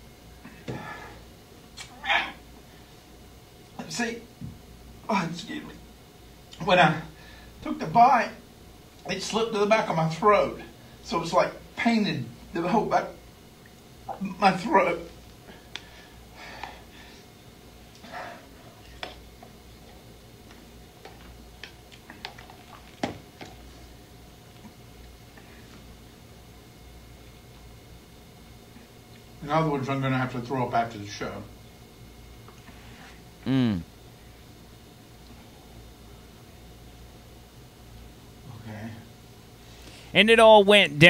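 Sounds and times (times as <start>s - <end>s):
studio hum: 39.7s - 41.0s.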